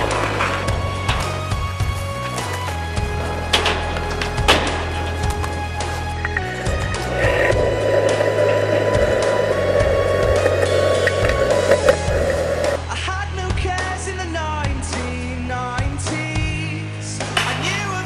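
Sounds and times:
skateboard clacks: 0.0 - 1.4
skateboard wheels rolling on concrete: 0.0 - 12.9
rock song: 0.0 - 18.0.

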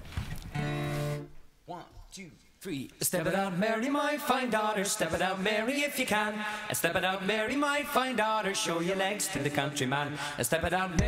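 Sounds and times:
acoustic guitar strum: 0.5 - 1.4.

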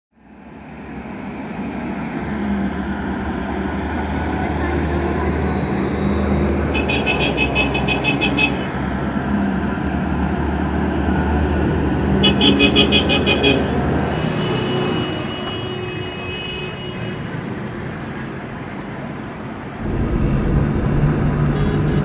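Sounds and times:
armoured vehicles engines droning: 0.2 - 15.7, 16.7 - 22.0.

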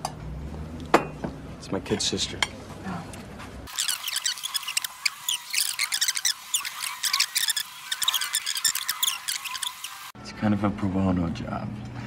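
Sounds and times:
high-pitched chirps and squeaks: 3.7 - 10.2.

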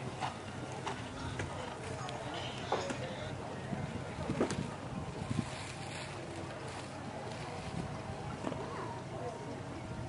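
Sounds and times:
wind rumbling on microphone: 3.2 - 10.0.

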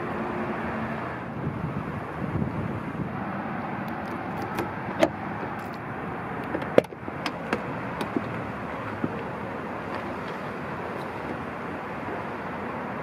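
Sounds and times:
outdoor background rumble: 0.0 - 13.0.

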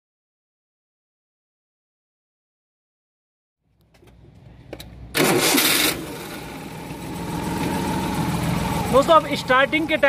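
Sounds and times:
car engine starting and idling: 4.0 - 10.0.

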